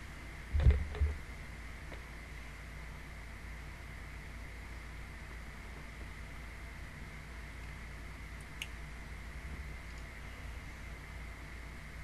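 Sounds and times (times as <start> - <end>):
microphone hiss and hum: 0.0 - 12.0.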